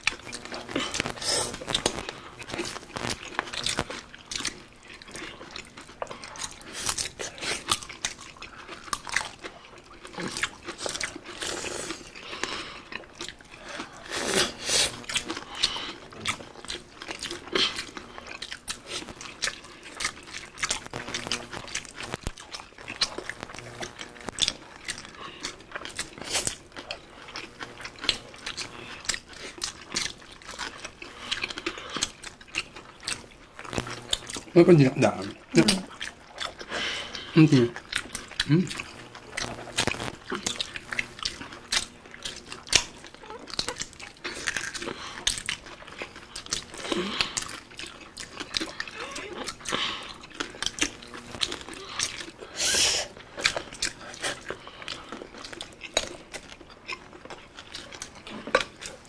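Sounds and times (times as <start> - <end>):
crunchy chewing: 0.0 - 59.0.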